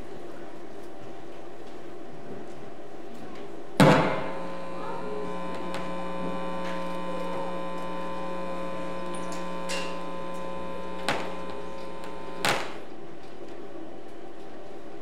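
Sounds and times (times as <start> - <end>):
electrical mains hum: 0.0 - 15.0
thump: 3.8 - 4.3.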